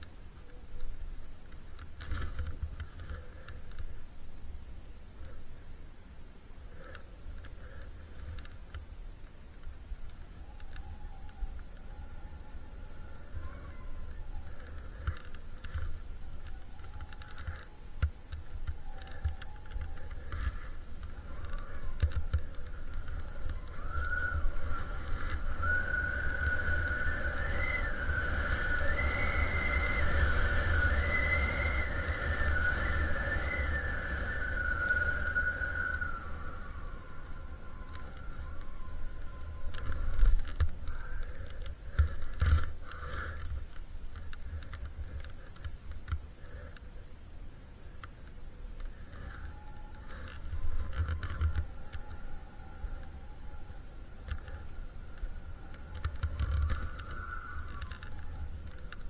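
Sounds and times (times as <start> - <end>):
faint high wavering whine: 0.0 - 59.0.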